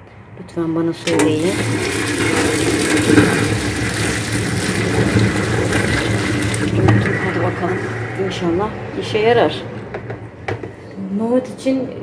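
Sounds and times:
water splashing into a steel sink: 0:01.0 - 0:08.3
low hum: 0:01.1 - 0:11.0.

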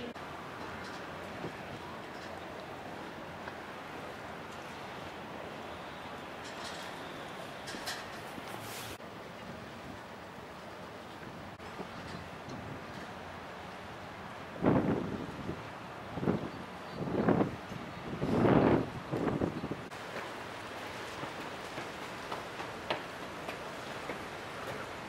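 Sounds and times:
wind buffeting microphone: 0:14.4 - 0:20.0.

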